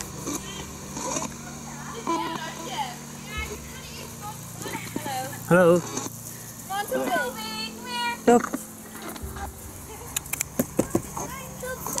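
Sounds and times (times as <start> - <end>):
steady low hum: 0.0 - 12.0
passers-by talking at a distance: 0.2 - 12.0.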